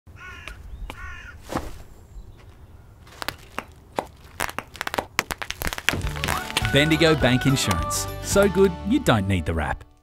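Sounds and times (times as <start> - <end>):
bird calling: 0.1 - 3.8
sharp crackle: 3.1 - 7.8.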